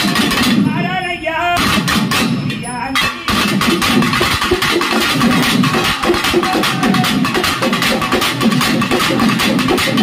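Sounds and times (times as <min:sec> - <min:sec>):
twin drums beaten fast: 0:00.0 - 0:01.0, 0:01.6 - 0:10.0.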